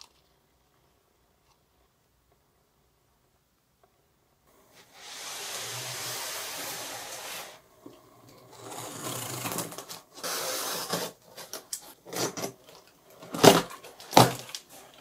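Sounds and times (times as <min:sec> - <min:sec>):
cardboard crackling and knocking: 0:13.2 - 0:15.0.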